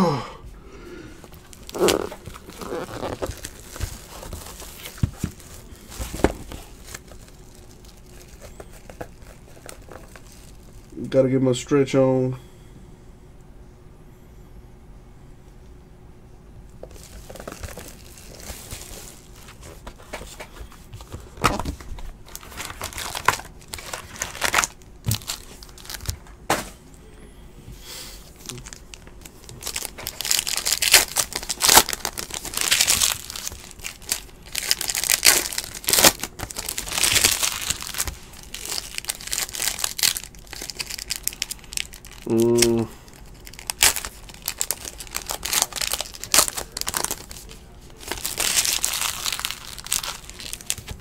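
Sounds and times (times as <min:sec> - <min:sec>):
foil wrapper crinkling and tearing: 0:01.2 - 0:11.0, 0:16.8 - 0:26.3, 0:28.3 - 0:51.0.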